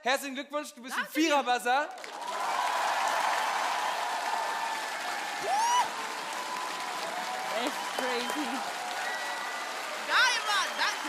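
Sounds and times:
audience applauding: 1.9s - 11.0s
person whooping: 5.4s - 6.0s.

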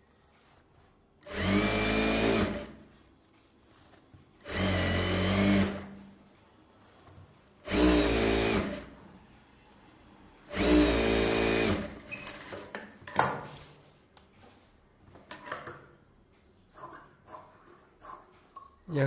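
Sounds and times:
sewing machine stitching: 1.2s - 2.9s, 4.4s - 6.1s, 6.9s - 9.0s, 10.5s - 12.8s.

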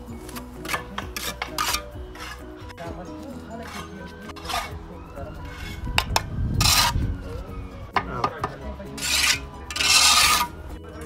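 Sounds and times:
trowel scraping along bricks: 0.0s - 7.3s, 8.9s - 10.8s
trowel tapping bricks: 0.3s - 2.4s, 8.0s - 10.5s.

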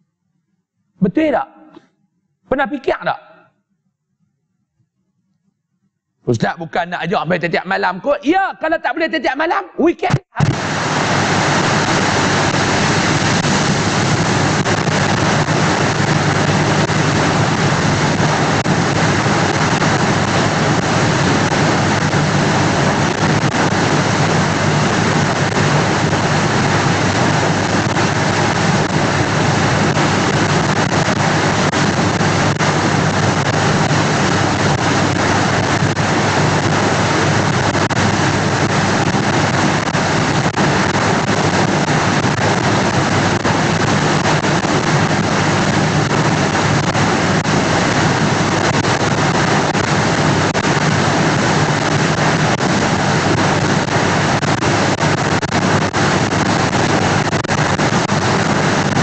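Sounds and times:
static hiss: 6.3s - 59.0s.

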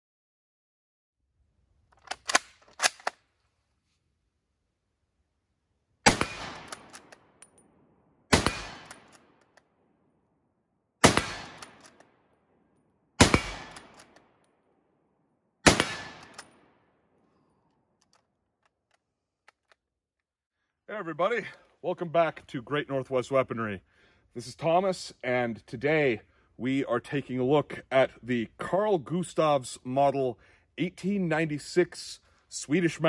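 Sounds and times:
rifle bolt clicks: 1.9s - 3.2s
rifle shots with echo: 6.0s - 7.4s, 8.3s - 9.4s, 11.0s - 12.0s, 13.2s - 14.4s, 15.6s - 16.8s.

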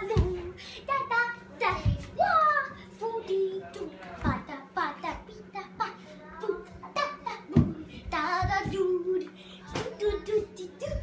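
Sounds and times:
girl singing wordless tune: 0.0s - 11.0s.

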